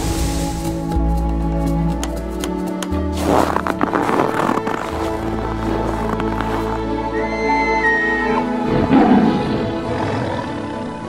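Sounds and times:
rushing swishing noise: 0:00.0 - 0:01.1
background music with drone: 0:00.0 - 0:11.0.

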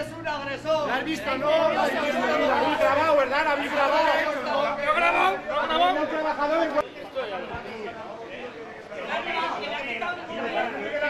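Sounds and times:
people arguing loudly: 0:00.0 - 0:11.0.

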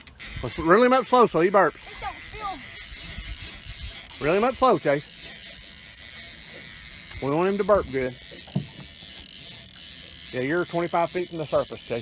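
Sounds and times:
fishing reel whirring: 0:00.0 - 0:12.0.

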